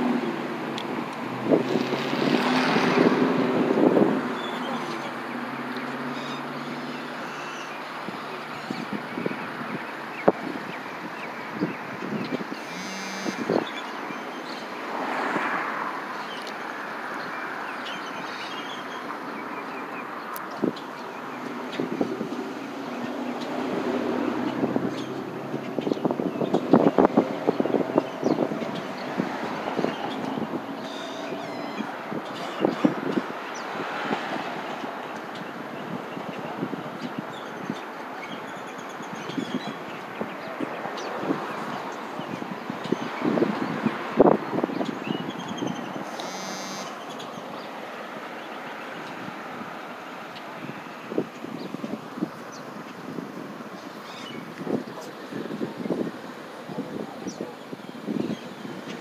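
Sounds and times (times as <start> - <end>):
street traffic: 0.0 - 59.0.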